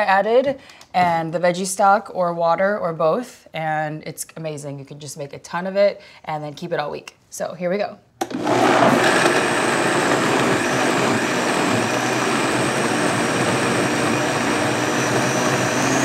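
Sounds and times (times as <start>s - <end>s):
blender running with high whine: 8.2s - 16.0s.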